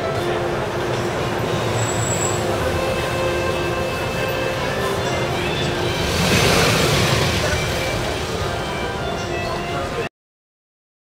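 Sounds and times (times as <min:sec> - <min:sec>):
bus passing by: 0:00.0 - 0:10.1.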